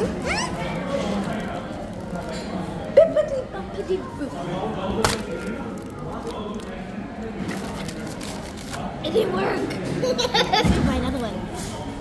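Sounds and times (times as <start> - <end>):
murmur of voices: 0.0 - 12.0
paper bag rustling: 0.2 - 2.9, 5.0 - 8.9.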